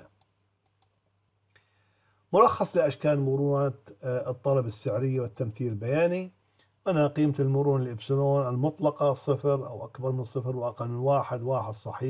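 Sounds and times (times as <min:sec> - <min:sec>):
computer mouse clicks: 0:00.0 - 0:01.0.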